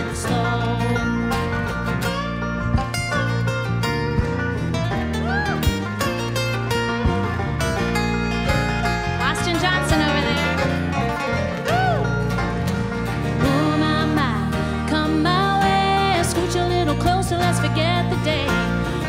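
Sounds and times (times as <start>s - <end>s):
banjo picking: 0.0s - 19.0s
country band playing: 0.0s - 19.0s.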